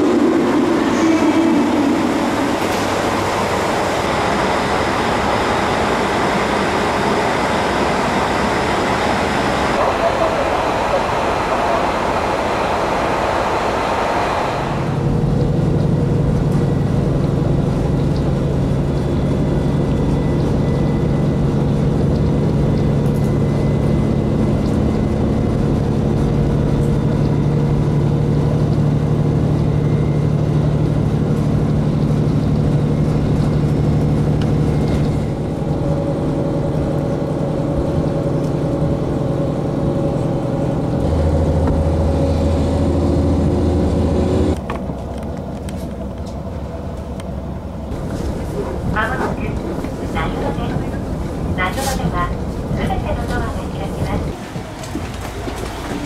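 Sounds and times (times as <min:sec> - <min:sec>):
deeper hum: 0:00.0 - 0:45.1
diesel railcar engine drone: 0:00.0 - 0:56.0.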